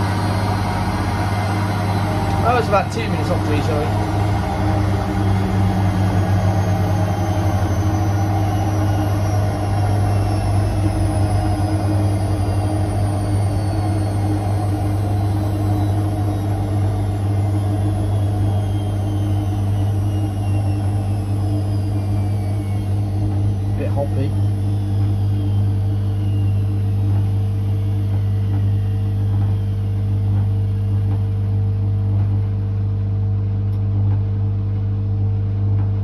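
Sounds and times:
faint high whine: 0.0s - 34.6s
steady low hum: 0.0s - 36.0s
washing machine spinning: 0.0s - 36.0s.

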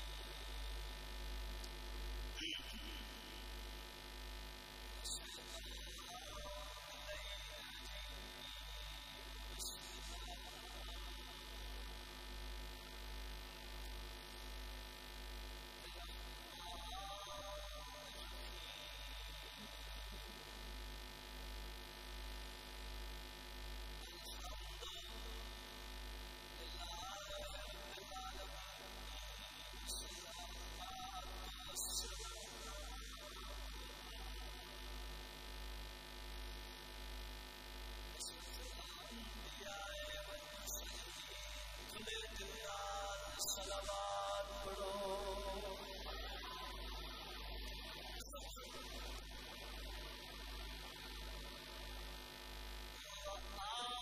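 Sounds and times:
pulsing mains hum: 0.0s - 54.0s.

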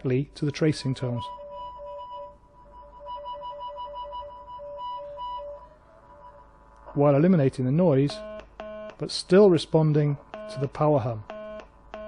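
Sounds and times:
alternating two-pitch tracing tone: 1.3s - 6.5s.

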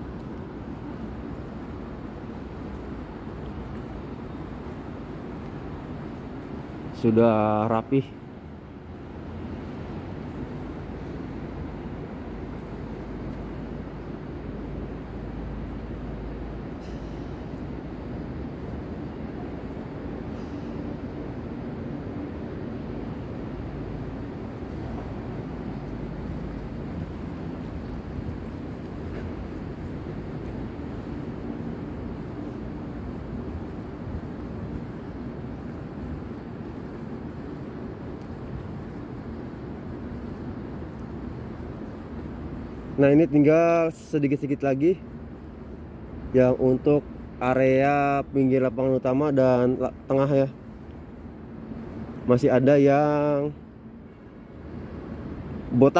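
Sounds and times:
low rumble with faint hum: 0.0s - 55.9s.

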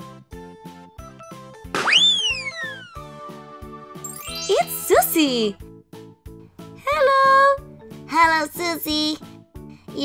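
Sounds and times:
children's music with steady beat: 0.4s - 10.0s
whistle sliding in pitch: 1.9s - 3.1s.

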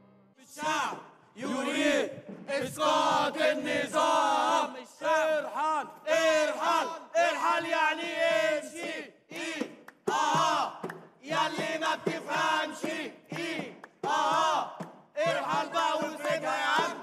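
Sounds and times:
group chanting slogans: 0.4s - 17.0s.

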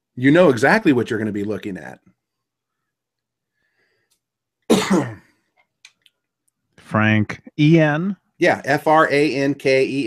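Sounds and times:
man clearing his throat: 4.7s - 5.4s.

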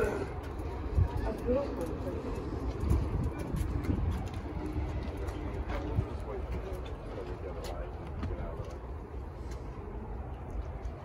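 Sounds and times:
faint indistinct voices: 0.0s - 11.0s
street traffic rumble: 0.0s - 11.0s
wind on microphone: 0.6s - 6.4s.

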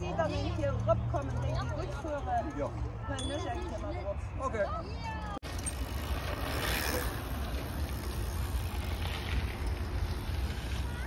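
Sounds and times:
bike tyres rolling over dirt: 5.4s - 11.0s.

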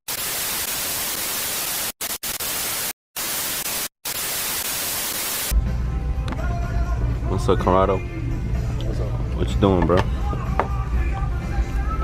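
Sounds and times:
tv static hiss: 0.1s - 5.5s.

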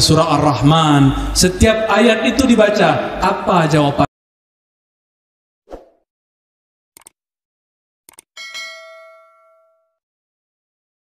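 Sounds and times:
bell ding: 8.4s - 10.0s.

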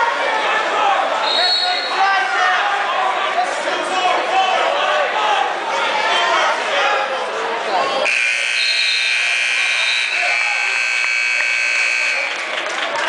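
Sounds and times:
crowd chatter: 0.0s - 13.0s
scoreboard buzzer: 8.0s - 12.4s.

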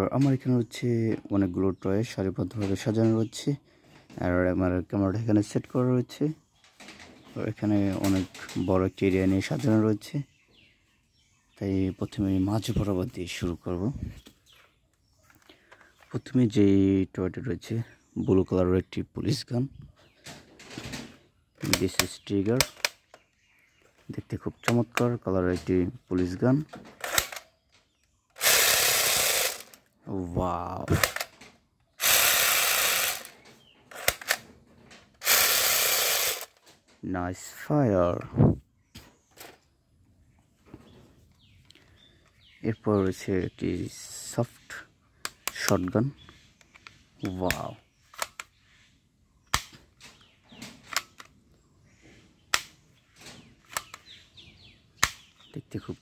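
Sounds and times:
plastic trigger clicks: 21.6s - 23.3s, 26.6s - 29.9s, 30.8s - 34.5s, 35.2s - 36.7s, 45.2s - 48.5s, 49.5s - 51.3s, 52.5s - 54.2s
toy gun buzzing rattle: 27.0s - 27.4s, 28.4s - 29.9s, 31.0s - 31.3s, 32.0s - 34.4s, 35.2s - 36.6s.

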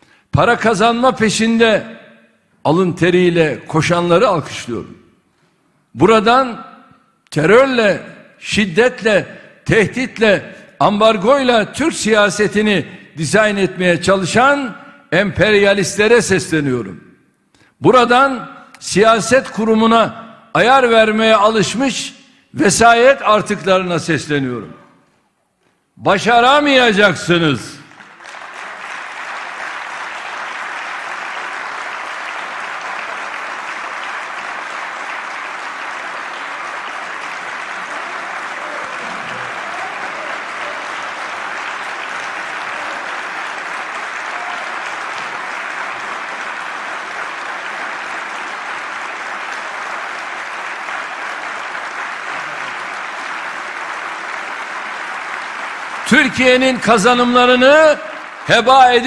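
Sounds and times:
crowd applause: 27.9s - 59.0s.

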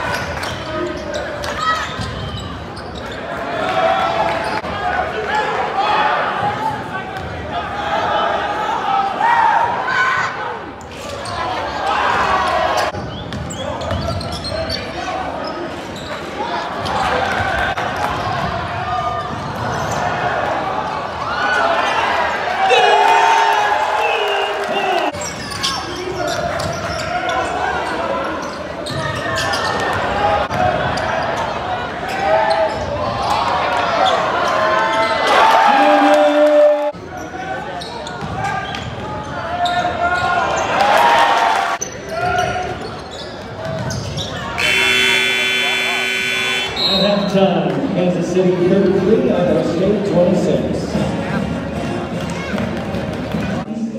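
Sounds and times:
crowd voices in gym: 0.0s - 53.9s
held tone: 44.6s - 47.0s.

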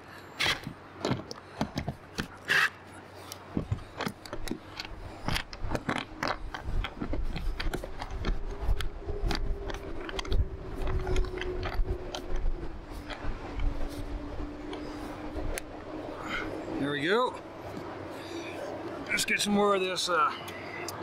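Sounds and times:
low rumble: 4.9s - 16.8s.

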